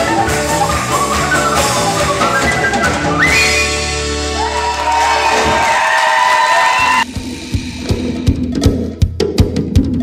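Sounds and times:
accordion tones: 0.0s - 4.1s
drum hits: 5.3s - 6.0s, 6.8s - 10.0s.

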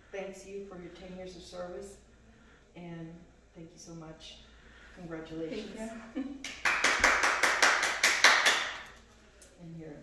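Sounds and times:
hands clapping quickly: 6.4s - 9.0s.

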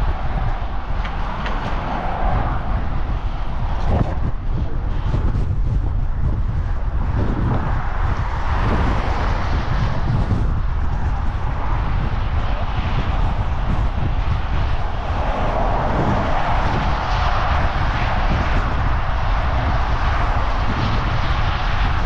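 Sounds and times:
rushing noise: 0.0s - 22.0s
wind buffeting microphone: 0.0s - 22.0s.

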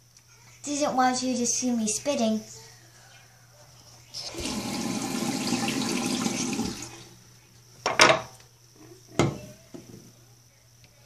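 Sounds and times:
water running: 4.1s - 7.3s.

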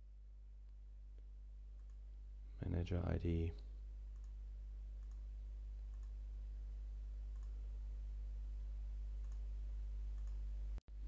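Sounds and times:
low electrical hum: 0.0s - 11.0s
faint computer mouse clicks: 5.0s - 5.2s, 5.9s - 6.2s, 9.2s - 9.5s, 10.2s - 10.4s.

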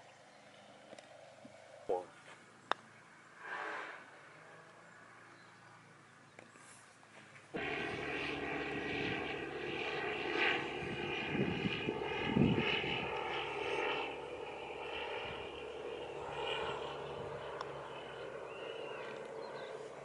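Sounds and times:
motor drone with held tones: 7.5s - 20.0s.

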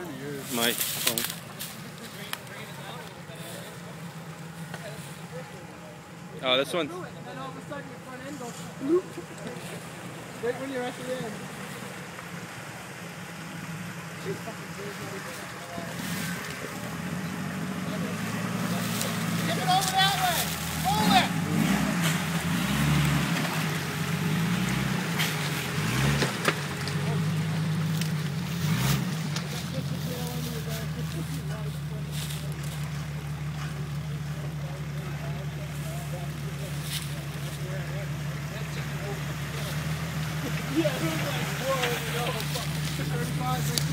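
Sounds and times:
faint voices: 0.0s - 43.9s
vehicle engine running at low revs: 0.0s - 43.9s.

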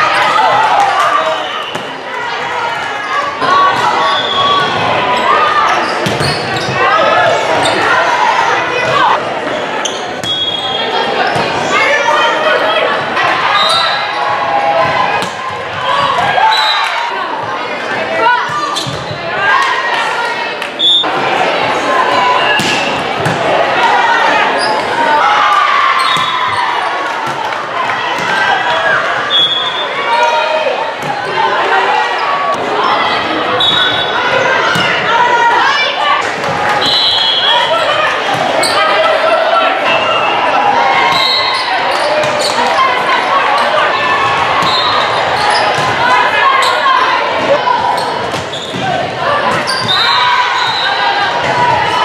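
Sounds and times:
people shouting and chatting: 0.0s - 52.0s
sneaker squeaks: 3.8s - 6.9s, 8.9s - 11.6s, 13.5s - 14.2s, 18.5s - 19.2s, 20.8s - 21.1s, 26.0s - 26.9s, 28.6s - 30.0s, 33.6s - 35.0s, 36.8s - 39.0s, 41.0s - 42.7s, 44.6s - 45.9s, 46.5s - 47.0s, 47.9s - 51.1s.

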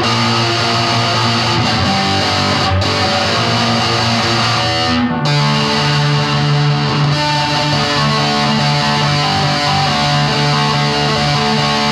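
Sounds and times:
guitar playing sustained notes: 0.0s - 11.9s.

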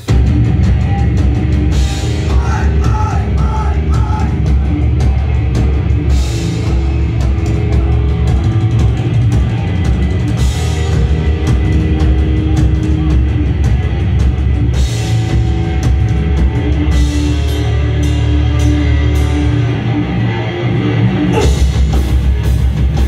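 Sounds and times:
heavy metal band playing: 0.0s - 23.0s.

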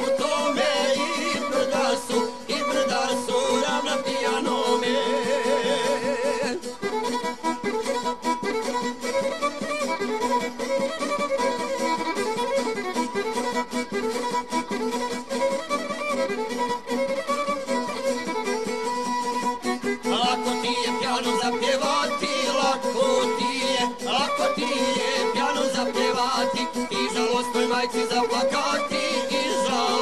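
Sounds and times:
rhythmic accompaniment: 0.0s - 30.0s
violin melody: 0.0s - 30.0s.

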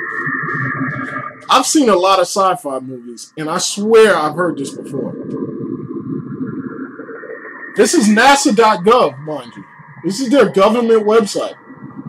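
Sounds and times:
faint higher tones: 0.0s - 12.0s
fluttering low warbling sound: 0.0s - 12.0s.

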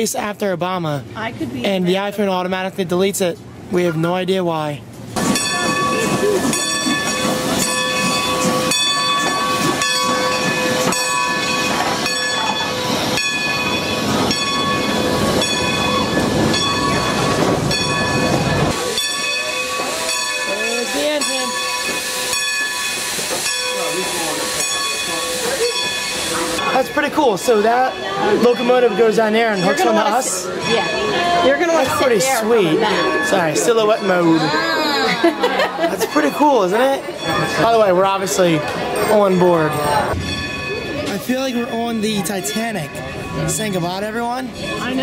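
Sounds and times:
steam locomotive bell ringing: 5.2s - 45.0s
hiss of steam: 20.6s - 26.6s.

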